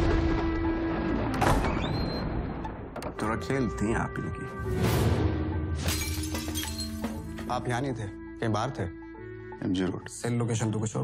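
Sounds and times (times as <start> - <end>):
dramatic trailer music: 0.0 - 6.2.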